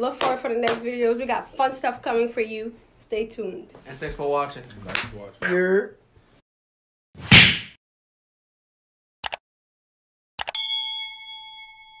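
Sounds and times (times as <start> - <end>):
bright bell ding: 10.5 - 12.0.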